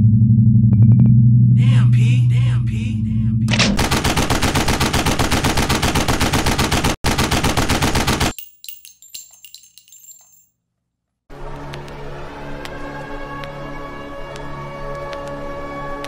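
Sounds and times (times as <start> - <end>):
rapid automatic gunfire: 3.8 - 8.3.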